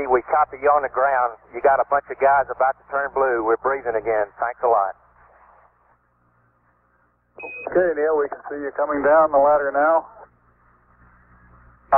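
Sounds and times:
faint low hum: 0.0 - 11.9
faint radio hiss: 0.0 - 11.9.

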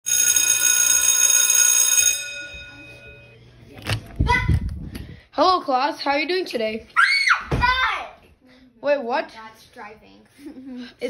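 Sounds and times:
alarm tone ringing: 0.0 - 3.5.

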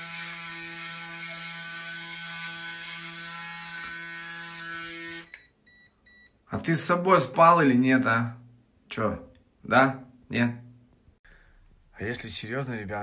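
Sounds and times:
electric shaver buzzing: 0.0 - 5.4
short faint beeps: 5.3 - 6.4.

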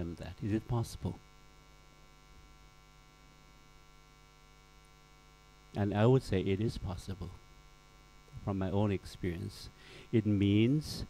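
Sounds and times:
faint mains hum: 0.0 - 11.0
man's voice: 8.4 - 11.0.

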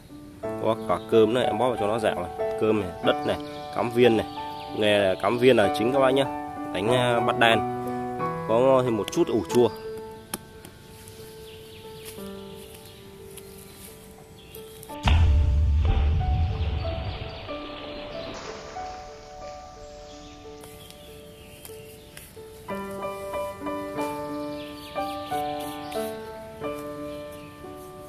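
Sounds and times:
slow background music: 0.0 - 28.0
ball splashing into pond: 15.9 - 20.4.

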